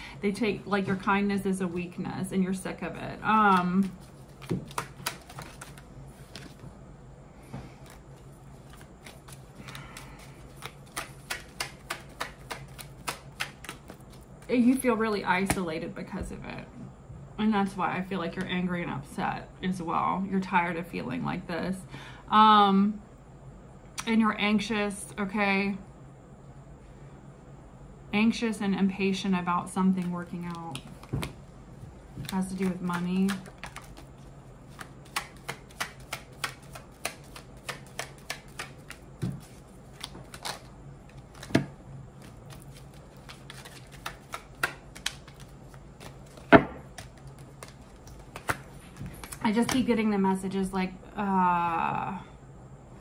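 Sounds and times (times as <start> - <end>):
cards being shuffled: 3.3 - 6.7, 7.8 - 14.8, 30.0 - 31.4, 32.1 - 49.9.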